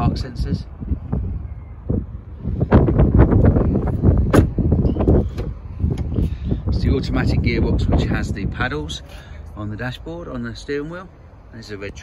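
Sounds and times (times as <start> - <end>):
wind rumbling on microphone: 0.0 - 9.1.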